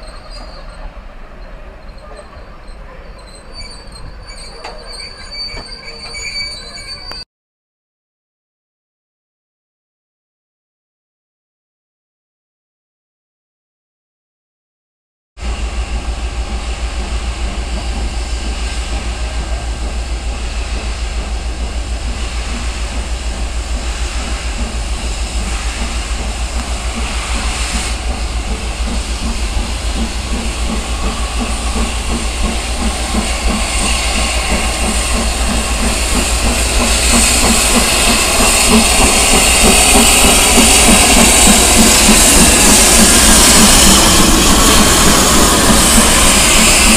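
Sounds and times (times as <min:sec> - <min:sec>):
steam locomotive rumble: 0:00.0 - 0:07.2, 0:15.4 - 0:46.9
hiss of steam: 0:15.4 - 0:46.9.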